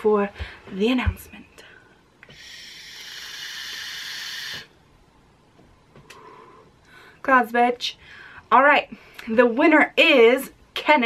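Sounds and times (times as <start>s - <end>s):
vape atomizer hiss: 2.2s - 4.7s.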